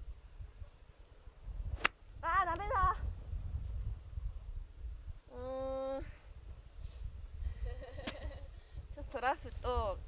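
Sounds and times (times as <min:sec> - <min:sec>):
wind rumble on microphone: 0:00.0 - 0:10.0
golf club striking ball: 0:01.8 - 0:02.0.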